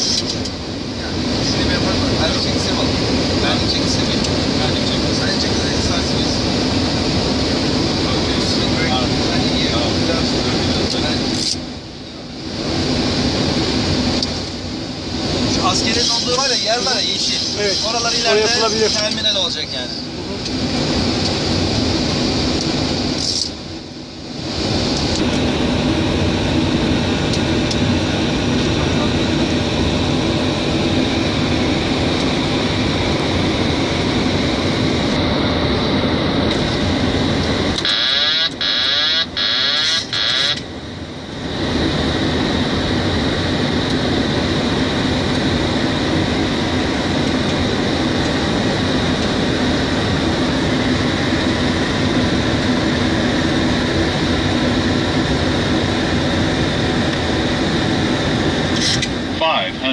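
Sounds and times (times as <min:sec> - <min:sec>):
loud airflow in aircraft cockpit: 0:00.0 - 0:59.9.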